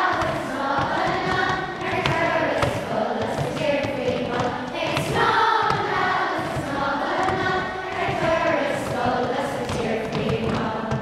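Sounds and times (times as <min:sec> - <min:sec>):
child singing: 0:00.0 - 0:11.0
other voices singing: 0:00.0 - 0:11.0.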